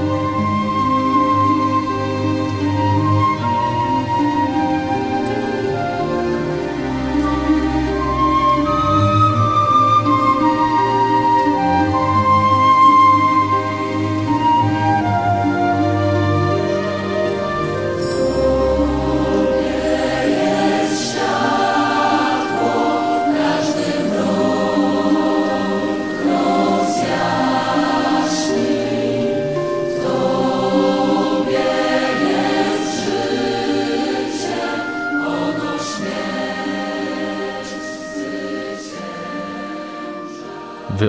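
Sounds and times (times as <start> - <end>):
choir singing held chords: 0.0 - 41.0.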